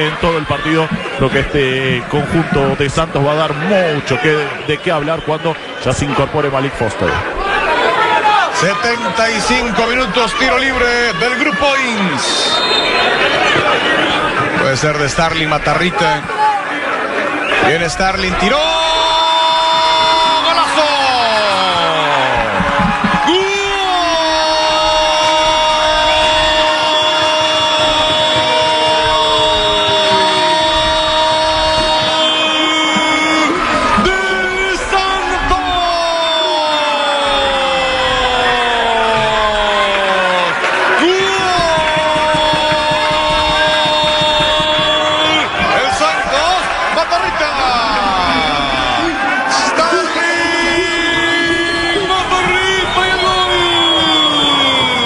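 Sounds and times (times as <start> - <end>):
background noise: 0.0 - 55.0.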